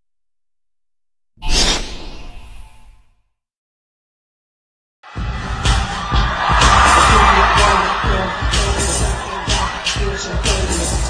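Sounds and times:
whoosh sound effect: 1.4s - 3.1s.

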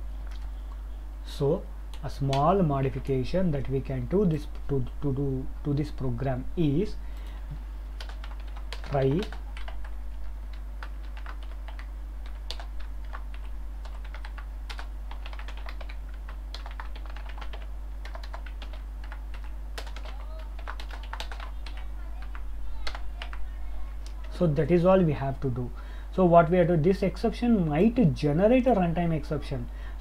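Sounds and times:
steady low hum: 0.0s - 30.0s
keyboard typing: 8.0s - 24.4s.

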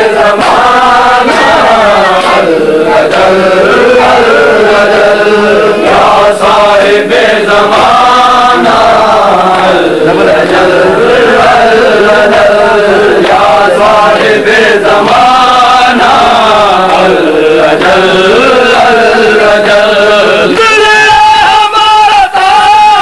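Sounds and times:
men chanting in unison: 0.0s - 23.0s.

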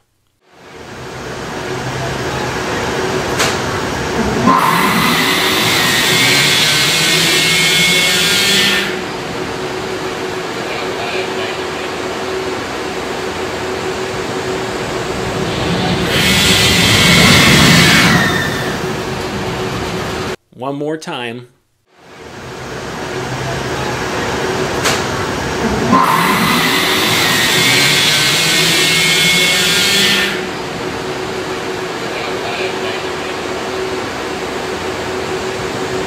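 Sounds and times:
steady electric drive hum: 0.6s - 20.4s, 26.5s - 36.0s
roller coaster launch motors screeching: 0.9s - 20.4s, 22.2s - 36.0s.

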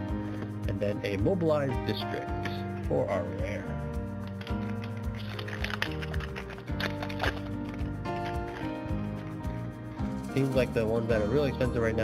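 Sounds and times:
background music with light beat: 0.0s - 12.0s.

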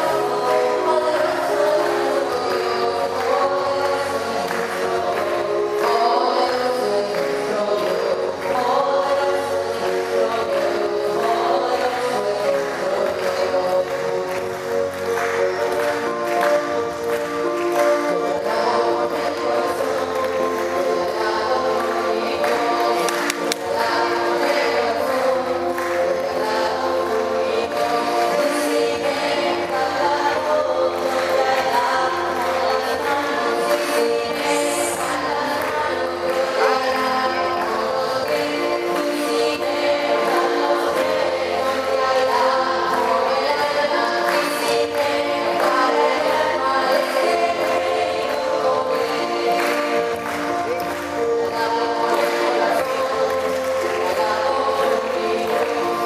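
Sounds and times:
choir singing with accompaniment: 0.0s - 56.0s.

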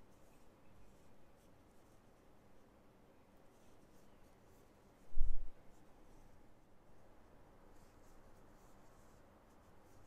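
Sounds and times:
crochet hook rustling yarn: 0.0s - 10.0s.

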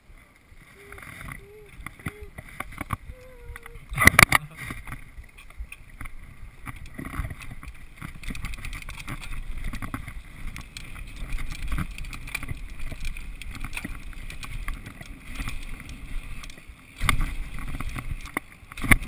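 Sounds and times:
bike rattles and clicks: 0.0s - 19.0s
bike tyres rumbling on dirt: 0.0s - 19.0s.

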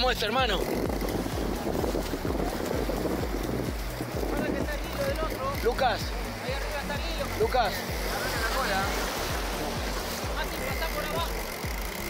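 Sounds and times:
surf washing on beach: 0.0s - 12.0s
wind buffeting microphone: 0.0s - 12.0s.

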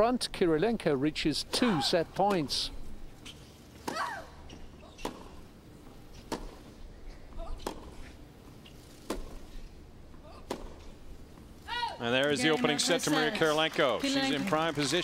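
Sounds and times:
tennis rackets hitting ball: 3.8s - 5.5s, 6.1s - 8.2s, 9.0s - 9.5s, 10.3s - 11.0s.

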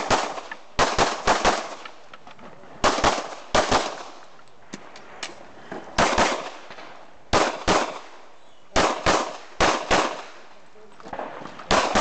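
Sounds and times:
pistol shots with echo: 0.0s - 2.0s, 2.8s - 4.2s, 6.0s - 10.5s, 11.1s - 12.0s.

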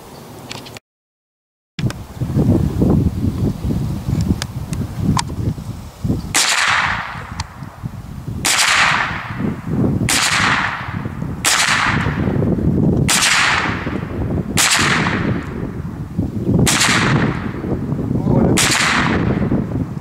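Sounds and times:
rifle shots echoing: 6.3s - 7.4s, 8.4s - 9.5s, 10.1s - 12.4s, 13.1s - 15.6s, 16.6s - 17.7s, 18.5s - 19.5s.

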